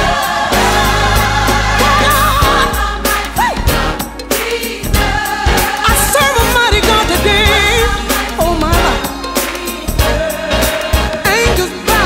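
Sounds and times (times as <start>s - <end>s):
gospel choir singing: 0.0s - 12.0s
band with sustained bass line: 4.9s - 12.0s.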